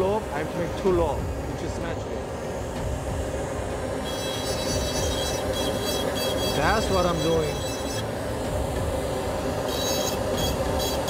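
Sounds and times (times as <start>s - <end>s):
higher-pitched whine: 0.0s - 11.0s
dental handpiece grinding whine: 4.0s - 11.0s.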